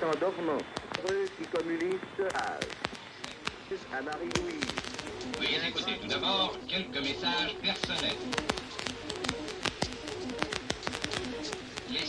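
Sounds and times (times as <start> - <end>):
faint music: 0.0 - 12.0
recording crackle: 0.0 - 12.0.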